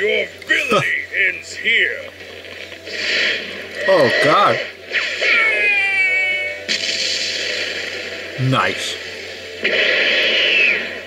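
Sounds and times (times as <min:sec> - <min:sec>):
cartoon explosion blast: 0:06.7 - 0:08.0, 0:09.6 - 0:11.0.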